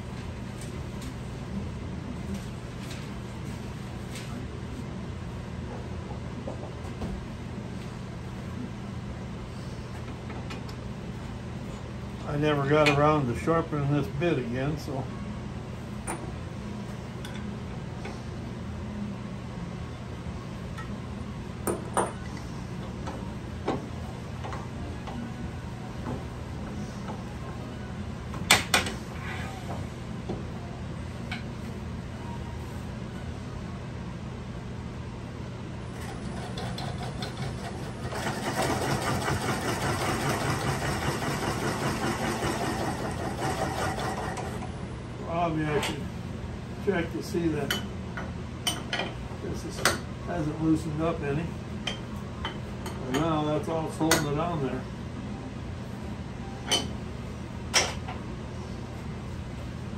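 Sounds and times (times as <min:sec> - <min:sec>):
wood lathe humming: 0:36.6 - 0:44.7.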